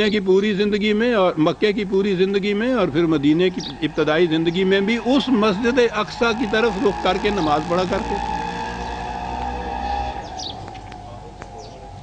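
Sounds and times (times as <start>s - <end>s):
falling bird chirps: 7.2s - 11.9s.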